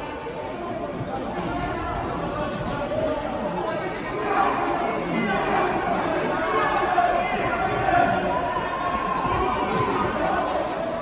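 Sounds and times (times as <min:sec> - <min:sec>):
voices talking and calling out: 0:00.0 - 0:11.0.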